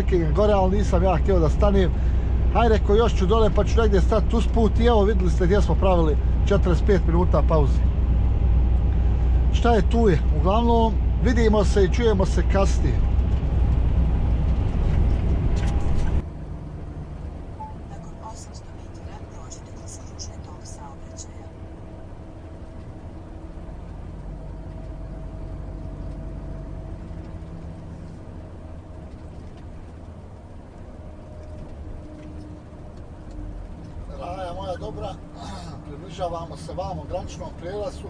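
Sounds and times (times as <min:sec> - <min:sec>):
road noise: 0:00.0 - 0:38.0
truck engine drone: 0:00.0 - 0:38.0.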